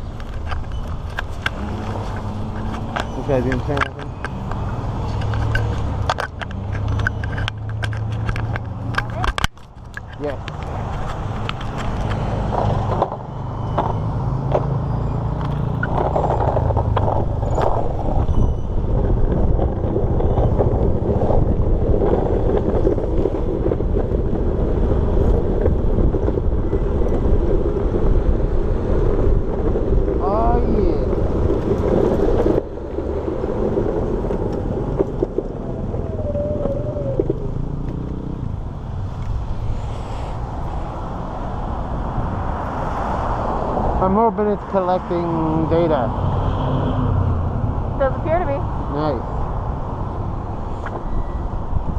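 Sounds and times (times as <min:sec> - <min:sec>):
road noise: 0:00.0 - 0:51.9
wind on microphone: 0:15.2 - 0:51.9.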